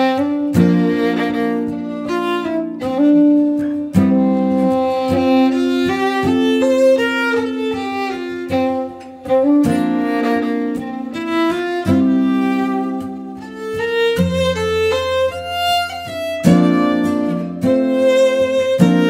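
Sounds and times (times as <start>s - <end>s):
acoustic guitar strumming: 0.0s - 19.0s
fiddle playing a waltz: 0.0s - 19.0s.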